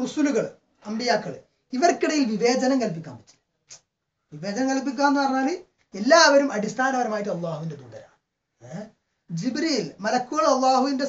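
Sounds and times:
person talking: 4.3 - 11.0.

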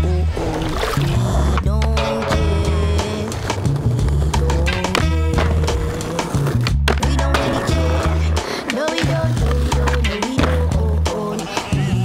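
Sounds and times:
hip-hop beat with heavy bass: 0.0 - 12.0
skateboard wheels rolling: 0.0 - 12.0
skateboard clacking on concrete: 1.6 - 12.0.

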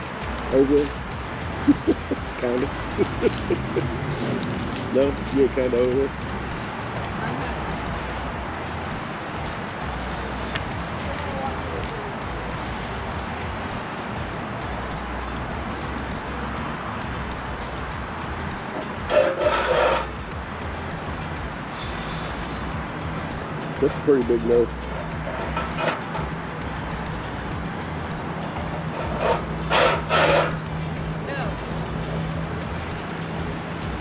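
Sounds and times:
background music: 0.0 - 34.0
road traffic: 0.0 - 34.0
wind: 0.0 - 34.0.

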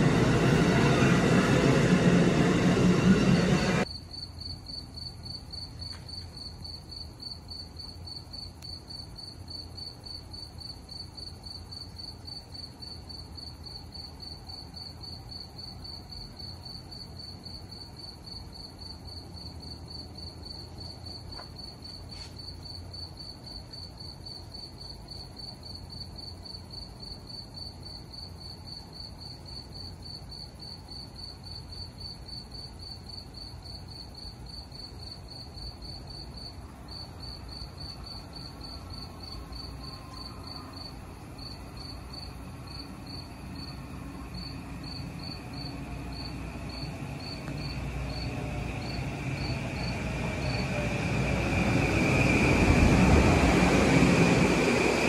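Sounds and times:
low steady rumble: 0.0 - 3.9
crickets chirping: 0.0 - 55.0.

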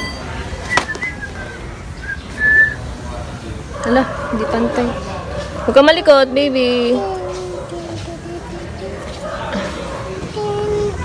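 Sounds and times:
person whistling: 0.7 - 1.3, 2.0 - 2.8.

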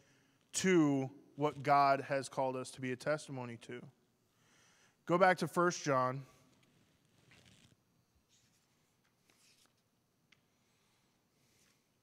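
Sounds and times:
paper pages rustling: 8.3 - 9.8.

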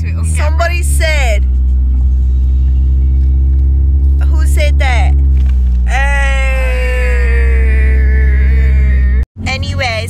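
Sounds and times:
car cabin road rumble: 0.0 - 10.0
woman's drawn-out ohhh: 5.9 - 9.2.

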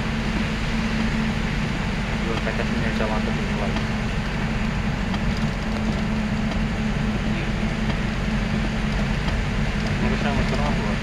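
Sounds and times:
engine and road drone in cabin: 0.0 - 11.0.

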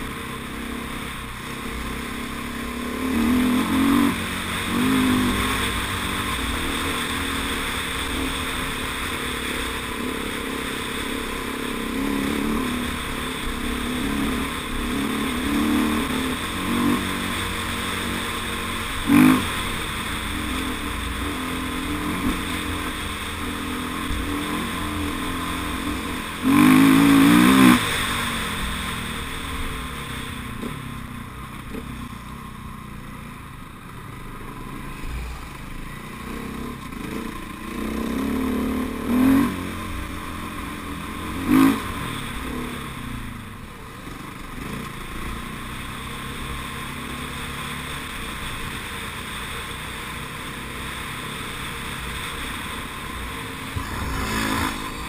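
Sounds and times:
dirt bike engine revving: 0.0 - 31.0, 34.6 - 43.1, 50.9 - 55.0.

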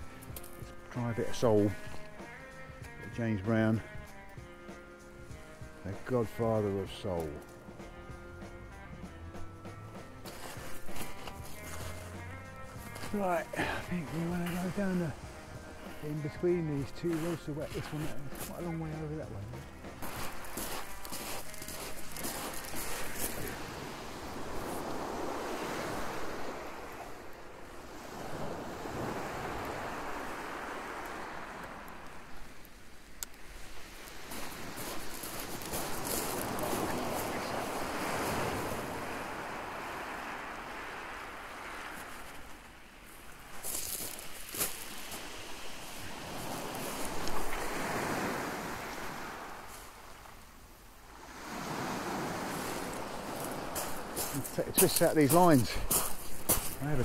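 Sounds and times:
waves washing over shingle: 10.2 - 57.0.

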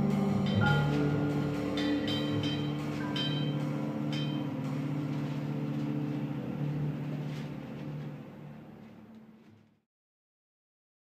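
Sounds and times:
struck notes ringing: 0.0 - 7.7
saxophones holding low notes: 0.0 - 8.9.

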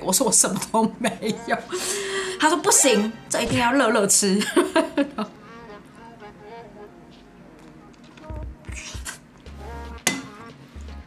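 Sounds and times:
soft background music: 0.0 - 11.0
dishes knocking: 10.1 - 10.4.

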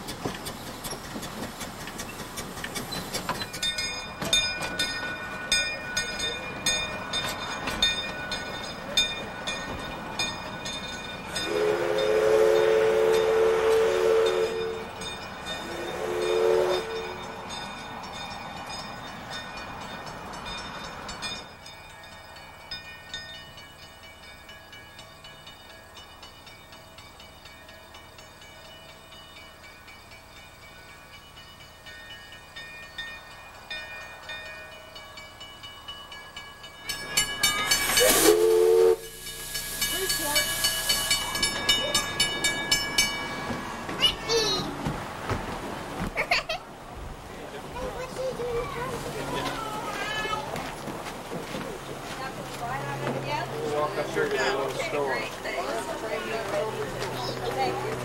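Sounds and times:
steam locomotive whistle: 11.3 - 15.0, 15.6 - 17.3, 37.8 - 41.5
steam hiss: 37.0 - 42.5.

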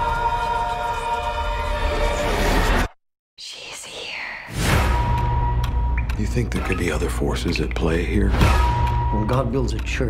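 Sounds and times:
breathy whisper-like sound: 3.4 - 4.5.

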